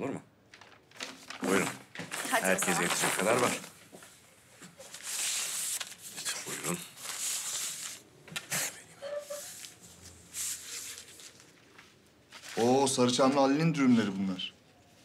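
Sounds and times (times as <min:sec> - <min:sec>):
food wrappers crinkling: 0:00.5 - 0:03.8, 0:09.4 - 0:13.2.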